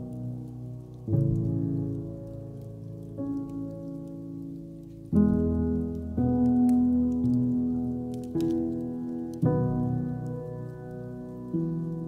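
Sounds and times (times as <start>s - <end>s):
slow soft music chords: 0.0s - 12.0s
wood fire crackling: 0.0s - 12.0s.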